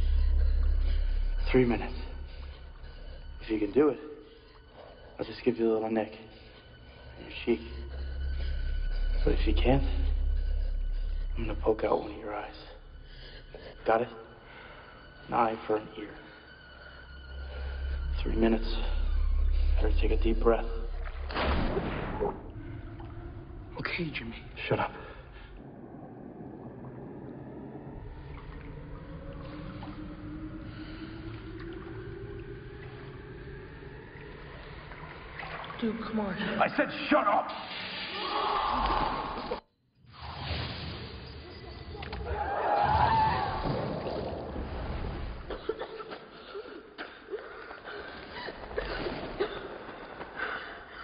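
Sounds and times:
low drone: 0.0 - 36.5
muffled underwater pool wash: 25.4 - 33.3.

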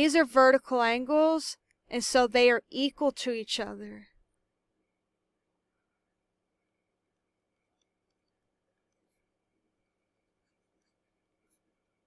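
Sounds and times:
faint handwriting ticks: 7.5 - 12.0.

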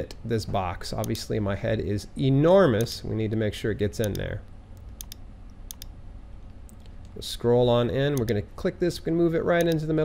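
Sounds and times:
faint low room hum: 0.0 - 10.0
computer mouse clicks: 4.0 - 5.9.

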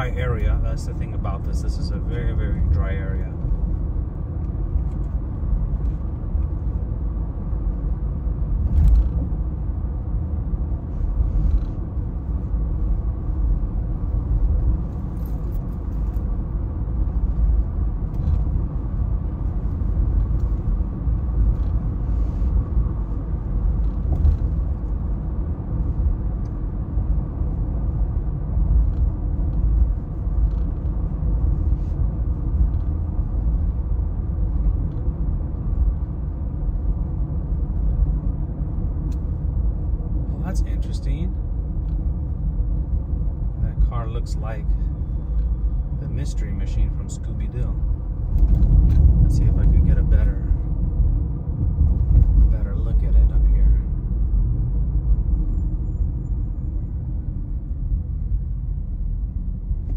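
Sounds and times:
car cabin road and engine rumble: 0.0 - 59.9.

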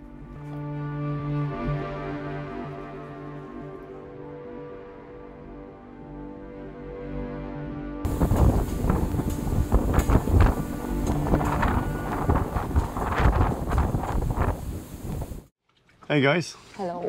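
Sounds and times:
music: 0.0 - 13.5
wind buffeting microphone: 8.1 - 15.5.

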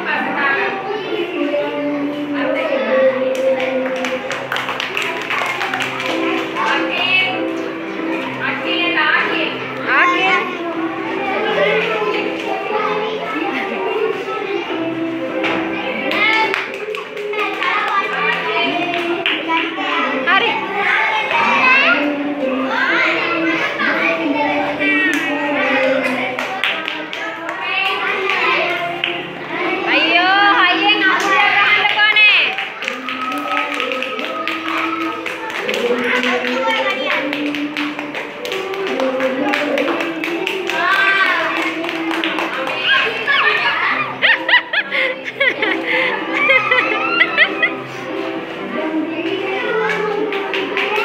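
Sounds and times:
music playing: 0.0 - 51.0
voices singing held notes: 0.0 - 51.0
young children chattering: 0.0 - 51.0
sharp hand claps: 3.4 - 6.7.

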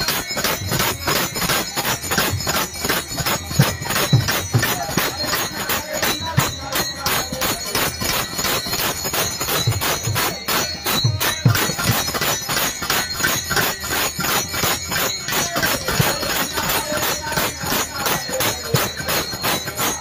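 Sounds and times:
small hand cymbals: 0.0 - 20.0.

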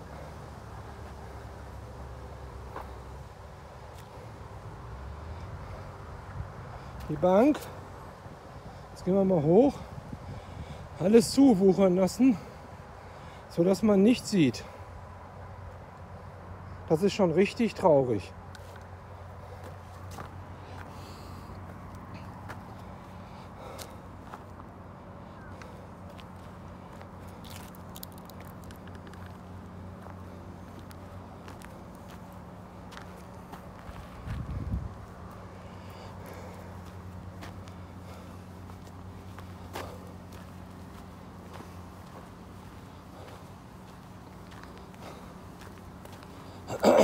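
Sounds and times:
low background hum: 0.0 - 47.0
footsteps on dirt path: 2.5 - 7.8, 17.7 - 47.0.

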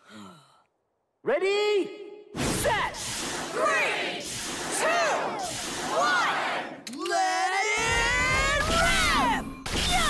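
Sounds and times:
voices shouting a countdown: 2.6 - 9.6.

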